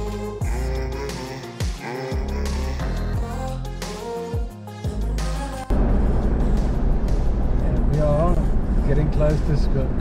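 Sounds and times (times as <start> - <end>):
engine rumble inside vehicle: 5.7 - 10.0.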